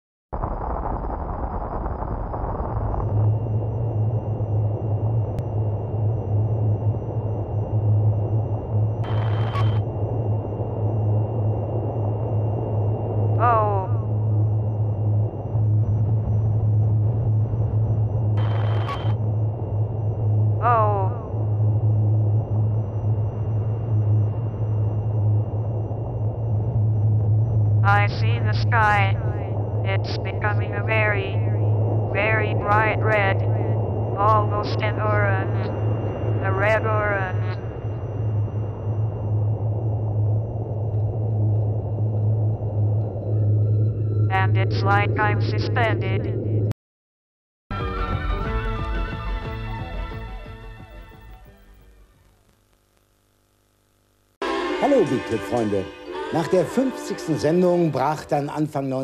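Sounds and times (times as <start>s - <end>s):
low rumbling drone with hiss: 3.0s - 46.2s.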